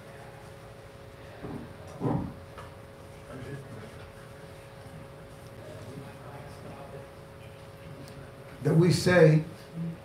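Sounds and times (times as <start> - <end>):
faint hum: 0.0 - 10.0
faint murmur of voices: 0.0 - 10.0.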